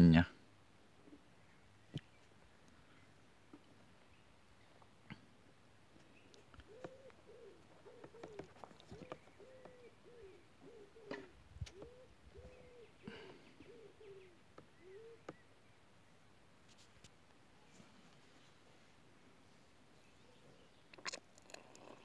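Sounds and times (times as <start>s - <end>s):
faint low hooting bird calls: 0.8s - 16.4s, 17.5s - 22.0s.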